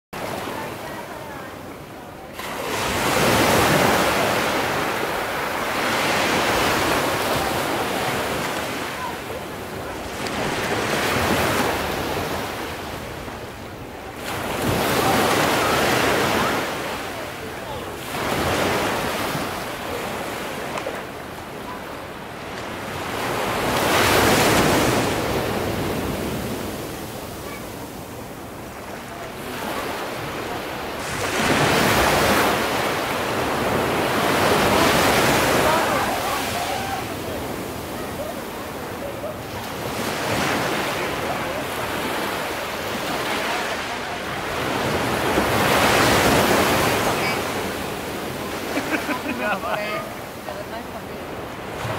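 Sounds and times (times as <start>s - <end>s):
sea surf breaking: 0.2s - 51.9s.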